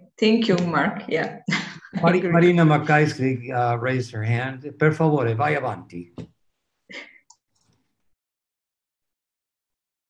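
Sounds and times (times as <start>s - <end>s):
person speaking: 0.4s - 6.2s.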